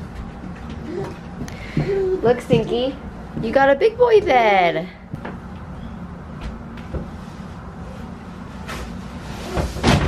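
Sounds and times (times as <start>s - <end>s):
steady low hum: 0.0s - 10.0s
mattress thump: 9.5s - 10.0s.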